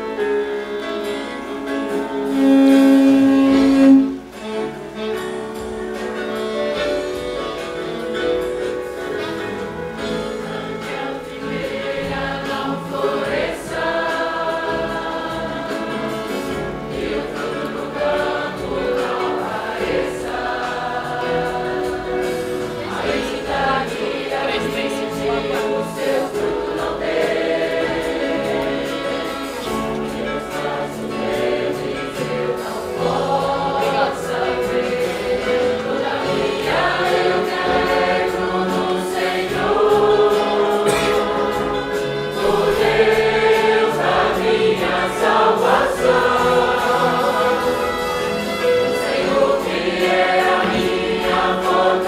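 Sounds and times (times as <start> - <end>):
congregation singing a hymn: 0.0 - 52.0
saxophones: 0.0 - 52.0
violins: 0.0 - 52.0.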